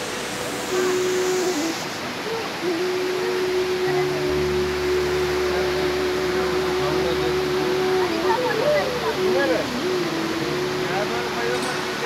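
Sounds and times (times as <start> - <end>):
long steady hooting tone: 0.0 - 12.0
rocky stream rushing: 0.0 - 12.0.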